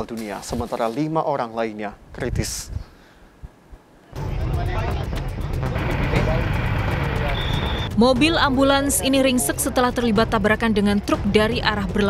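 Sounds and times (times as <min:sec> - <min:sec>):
road traffic rumble: 0:04.3 - 0:07.9.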